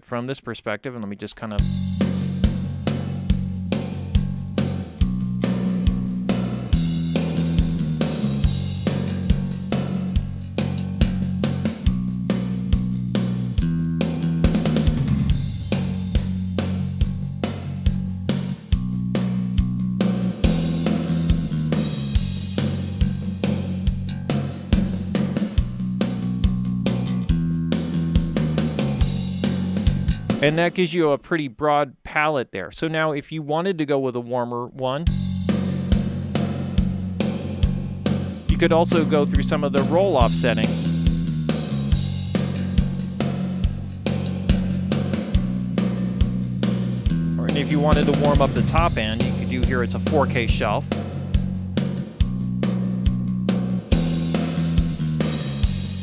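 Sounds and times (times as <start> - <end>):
drum kit beat: 1.6 - 30.9, 35.1 - 56.0
uptempo rock song: 1.6 - 31.0, 35.1 - 56.0.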